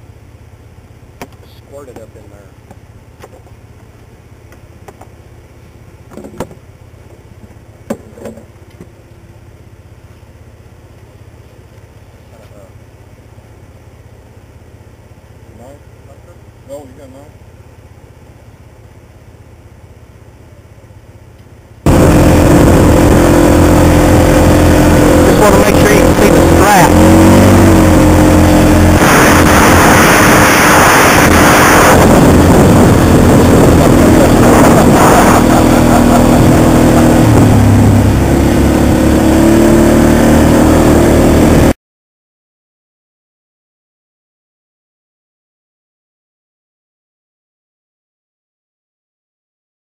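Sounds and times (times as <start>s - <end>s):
atv engine revving: 21.8s - 41.8s.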